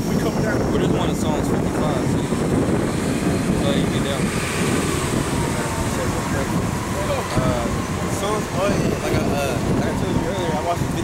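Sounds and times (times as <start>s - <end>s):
faint voices: 0.0s - 11.0s
street traffic rumble: 0.0s - 11.0s
wind buffeting microphone: 0.0s - 11.0s.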